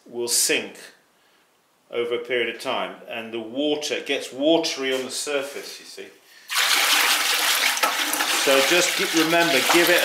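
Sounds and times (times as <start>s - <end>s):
whisk stirring liquid in bucket: 6.6s - 10.0s.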